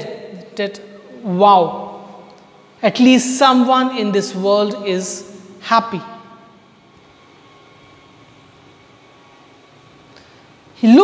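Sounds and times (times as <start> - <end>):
echoing voice: 0.0 - 6.9, 10.8 - 11.0
room background noise: 0.0 - 11.0.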